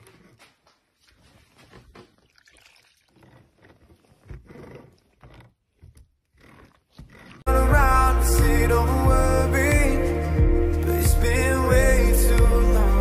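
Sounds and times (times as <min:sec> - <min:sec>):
pop music with singing: 0:07.5 - 0:13.0.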